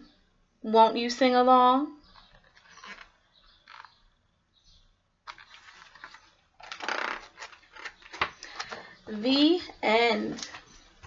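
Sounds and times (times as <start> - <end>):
book being handled rustling: 2.2 - 3.9, 5.2 - 8.9.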